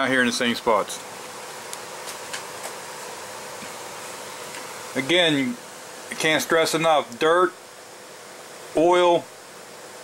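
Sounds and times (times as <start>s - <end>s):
background hiss: 0.0s - 10.0s
faint hum: 0.0s - 10.0s.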